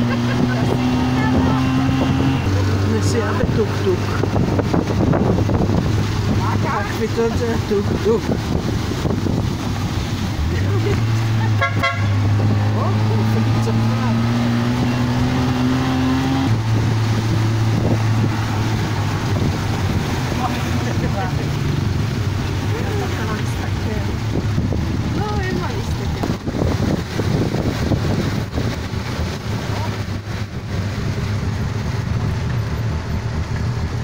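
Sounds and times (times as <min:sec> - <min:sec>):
tyres hissing on wet road: 0:00.0 - 0:34.0
horn beep: 0:11.5 - 0:12.3.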